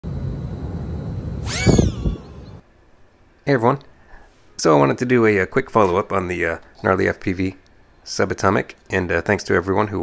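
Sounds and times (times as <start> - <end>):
low rumble: 0.0 - 2.6
drone motors whining: 0.1 - 2.6.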